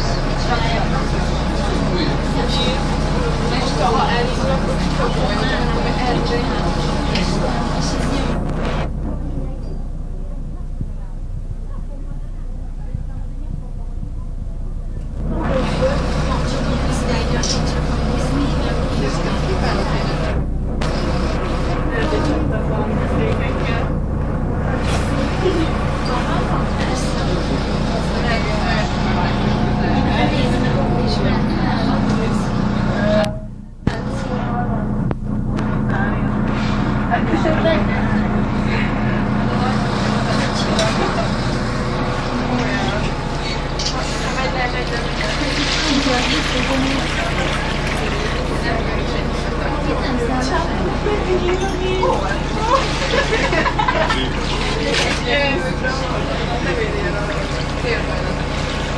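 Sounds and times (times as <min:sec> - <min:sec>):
bus engine rumble: 0:00.0 - 0:58.9
passengers talking: 0:00.0 - 0:58.9.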